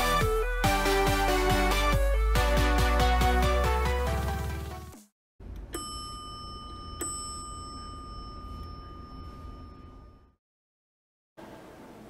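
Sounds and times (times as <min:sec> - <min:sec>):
electronic music: 0:00.0 - 0:04.9
elevator chime: 0:05.7 - 0:10.4.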